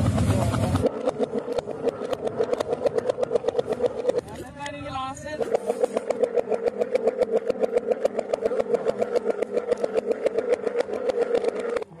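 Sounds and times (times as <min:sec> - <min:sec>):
pellet drum rattling fast: 0:00.0 - 0:12.0.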